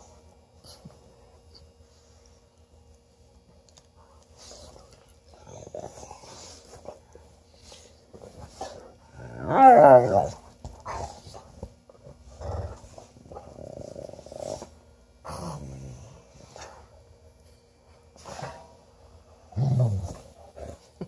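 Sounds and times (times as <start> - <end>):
dogs play-growling: 3.8 - 16.9, 18.1 - 21.0.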